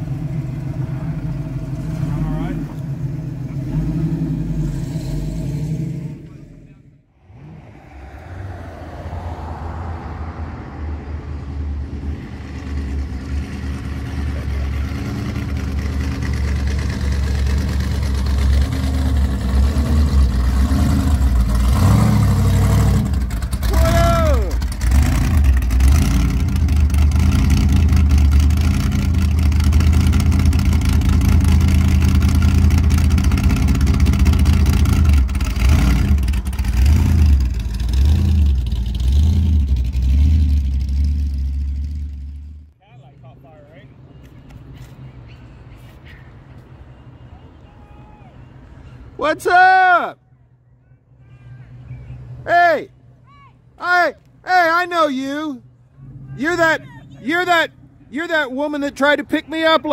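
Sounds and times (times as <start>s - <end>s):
car engine rumbling and revving: 0.0s - 42.8s, 54.3s - 59.9s
background voices: 6.2s - 12.3s.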